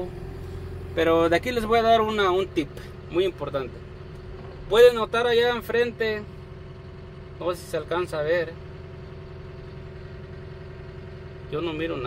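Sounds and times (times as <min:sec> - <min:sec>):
constant hum: 0:00.0 - 0:12.0
diesel engine idling: 0:00.0 - 0:12.0.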